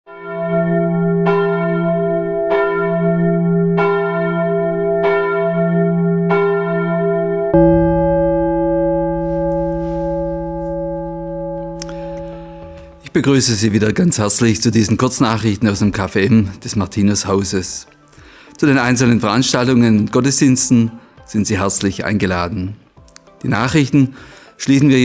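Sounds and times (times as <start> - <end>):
church bell tolling: 0.2 - 14.4.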